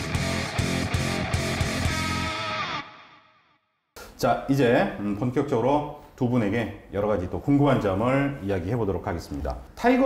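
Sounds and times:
distorted electric guitar music: 0.0s - 3.6s.

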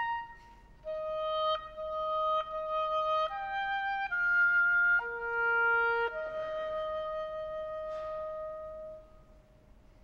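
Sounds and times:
oboe sustained note: 0.0s - 9.8s.

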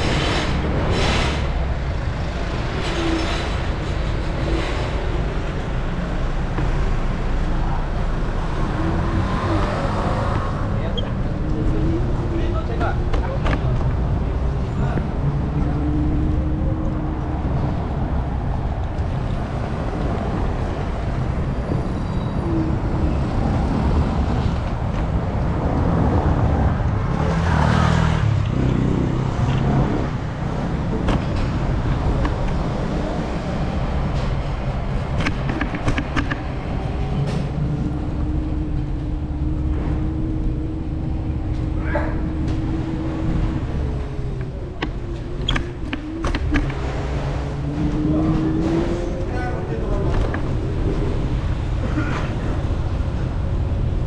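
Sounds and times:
city traffic rumble: 0.0s - 54.0s.

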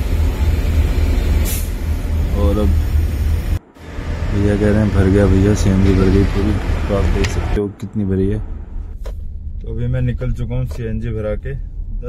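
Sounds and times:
low steady rumble: 0.0s - 12.0s
sharp hiss of gas: 1.4s - 1.8s.

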